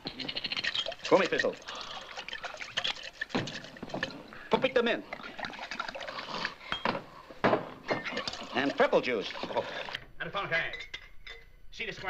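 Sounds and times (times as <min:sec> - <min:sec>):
liquid pouring into shaker: 0:00.5 - 0:04.2, 0:05.1 - 0:06.6, 0:08.1 - 0:10.0
glassware clinking: 0:06.7 - 0:09.6, 0:10.6 - 0:11.6.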